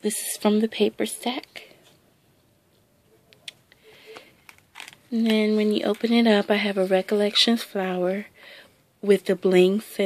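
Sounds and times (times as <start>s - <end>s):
paper rustling and clicks: 4.1s - 6.1s.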